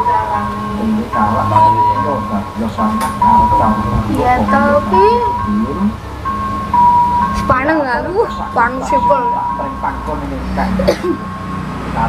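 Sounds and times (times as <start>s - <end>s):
person talking: 0.0s - 6.0s
simple melody from television: 0.0s - 12.0s.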